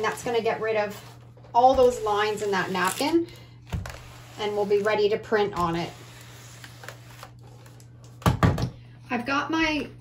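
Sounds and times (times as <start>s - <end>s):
iron rustling over paper: 0.0s - 8.0s.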